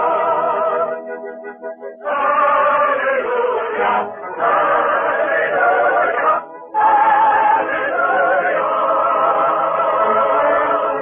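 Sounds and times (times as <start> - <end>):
choir singing on old radio: 0.0 - 11.0.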